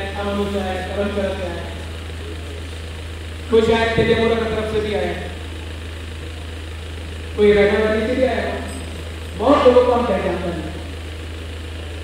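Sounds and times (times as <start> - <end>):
low electrical hum: 0.0 - 12.0
man's amplified voice echoing: 9.4 - 10.5.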